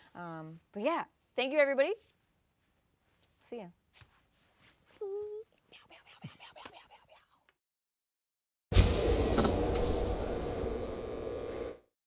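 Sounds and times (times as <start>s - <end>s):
electric hum and hiss: 8.8s - 11.9s.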